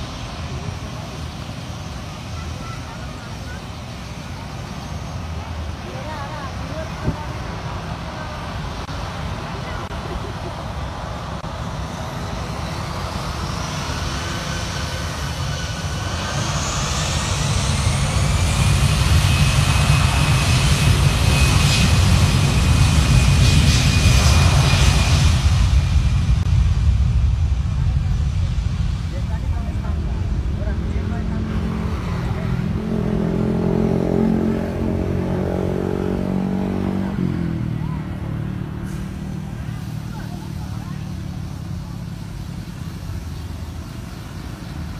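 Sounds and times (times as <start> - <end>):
jet engines at takeoff thrust: 0.0 - 44.9.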